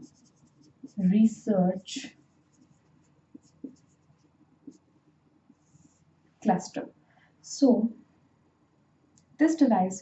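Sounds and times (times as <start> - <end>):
marker writing on whiteboard: 0.0 - 6.1.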